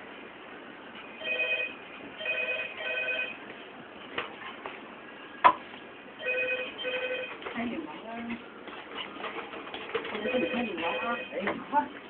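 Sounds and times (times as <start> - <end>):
telephone electronic ringing: 1.2 - 3.4, 6.2 - 7.5, 10.1 - 11.5.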